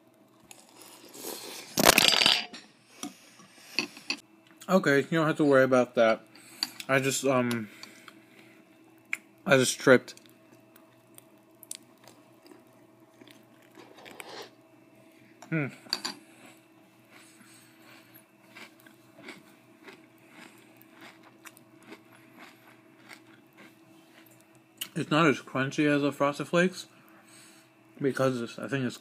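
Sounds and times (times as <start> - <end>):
person chewing soft cereal: 10.1 - 14.5, 16.2 - 24.9.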